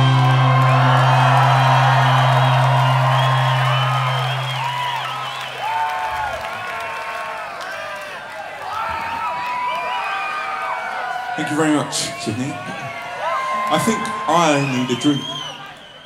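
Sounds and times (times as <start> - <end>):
rock band final chord ringing: 0.0 - 4.9
crowd cheering and whooping: 0.0 - 16.0.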